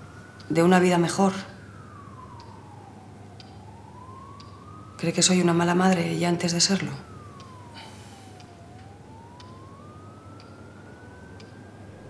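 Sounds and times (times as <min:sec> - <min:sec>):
distant siren-like wail: 0:00.0 - 0:12.0
low steady hum: 0:00.0 - 0:12.0.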